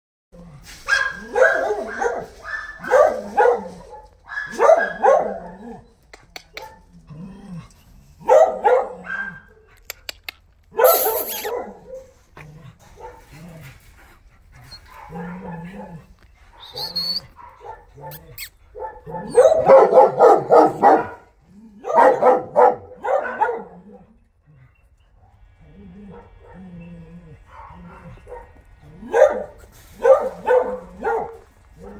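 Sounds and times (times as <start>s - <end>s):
dogs barking: 0.9s - 5.8s, 8.2s - 9.5s, 10.7s - 12.1s, 13.0s - 13.3s, 14.9s - 16.0s, 17.4s - 24.1s, 27.4s - 31.9s.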